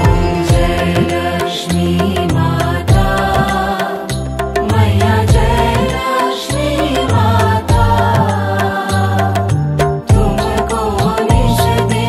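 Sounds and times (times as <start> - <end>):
devotional music with percussion: 0.0 - 12.0.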